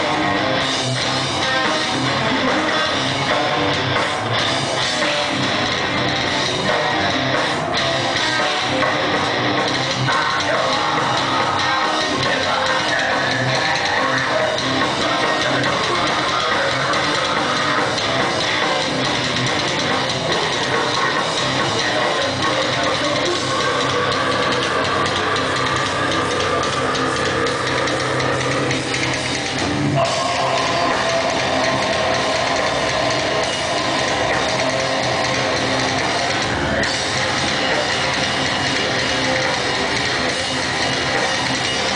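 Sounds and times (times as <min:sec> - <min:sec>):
distorted electric guitars: 0:00.0 - 0:41.9
drum kit: 0:00.0 - 0:41.9.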